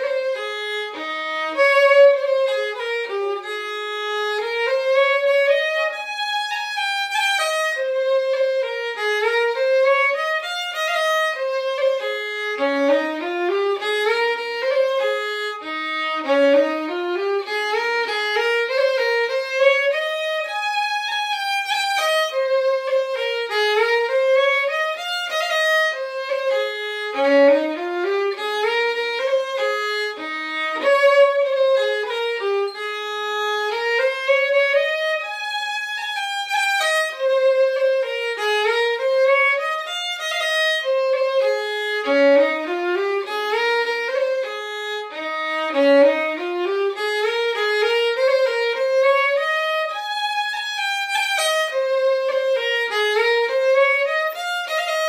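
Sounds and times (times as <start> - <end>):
solo fiddle playing: 0.0 - 55.0.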